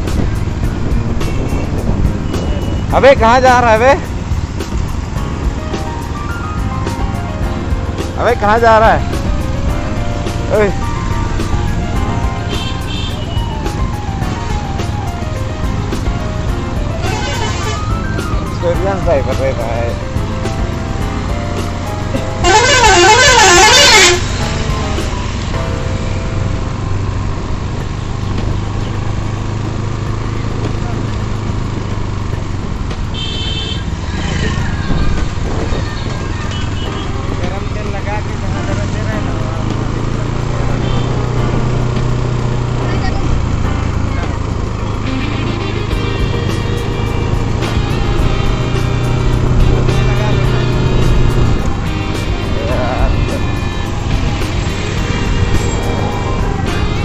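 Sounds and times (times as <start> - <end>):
warbling vehicle horn: 12.4 - 13.5, 17.0 - 18.2, 22.4 - 24.4, 33.1 - 34.0, 40.7 - 41.4, 44.8 - 49.5, 52.7 - 57.0.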